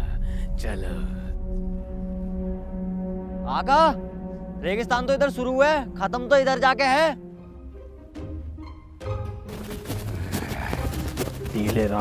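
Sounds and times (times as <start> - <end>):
hooves clopping: 9.4 - 12.0.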